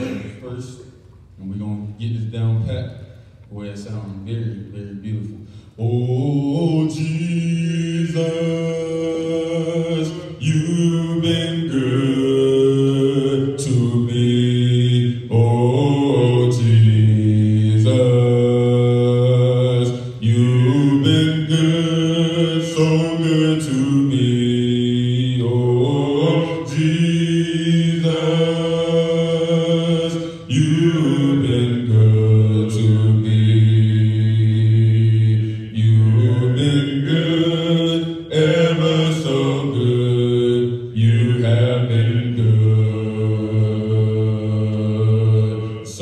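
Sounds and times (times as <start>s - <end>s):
slow worship singing: 0.0s - 46.0s.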